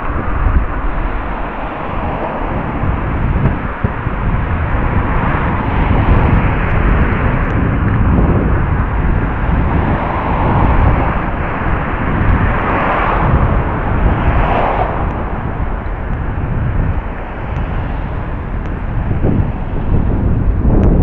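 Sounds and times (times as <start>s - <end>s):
street noise: 0.0s - 21.0s
wind rumble: 0.0s - 21.0s.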